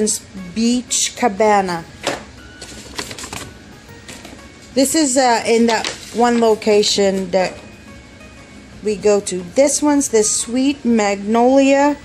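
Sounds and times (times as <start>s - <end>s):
plastic items clicking and tapping: 2.0s - 4.4s
paper bag rustling: 2.6s - 4.4s, 5.5s - 7.3s.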